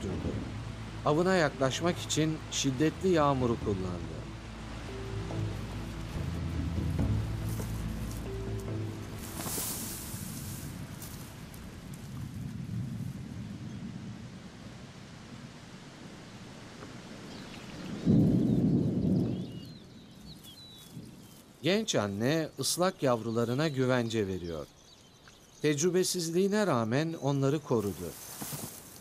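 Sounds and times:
low held music notes: 0.0s - 13.4s
heavy rain: 0.0s - 19.2s
low rumble of thunder: 10.6s - 16.6s, 17.7s - 20.2s.

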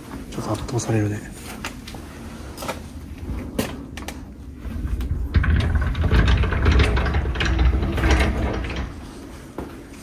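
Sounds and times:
sliding door rattling open: 4.8s - 9.2s.

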